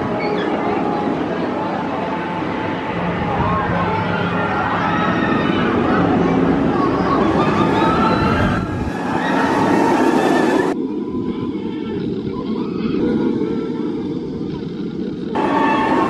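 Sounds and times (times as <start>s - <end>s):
roller coaster rumbling on track: 0.0s - 16.0s.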